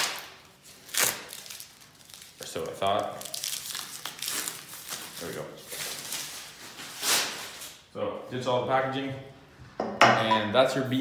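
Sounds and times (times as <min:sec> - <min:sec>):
plastic wrap crinkling: 0:00.0 - 0:07.9.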